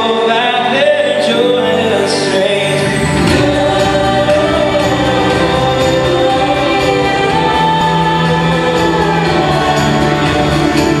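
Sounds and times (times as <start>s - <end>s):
acoustic guitar: 0.0s - 11.0s
man singing: 0.0s - 11.0s
band bass and drums: 2.6s - 11.0s
women singing in harmony: 2.9s - 11.0s.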